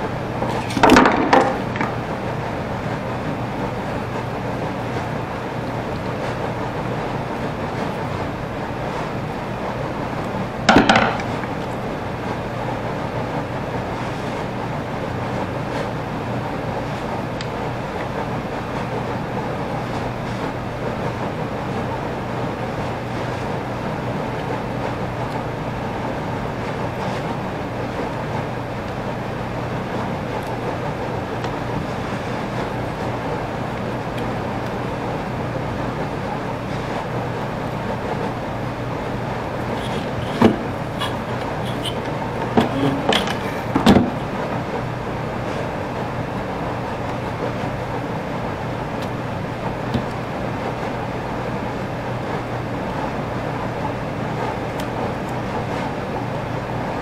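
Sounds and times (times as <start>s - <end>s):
mechanical hum: 0.0s - 57.0s.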